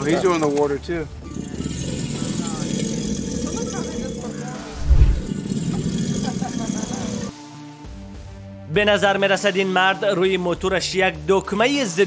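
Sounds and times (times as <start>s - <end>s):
alligator bellowing: 1.3s - 7.3s
music: 4.3s - 12.0s.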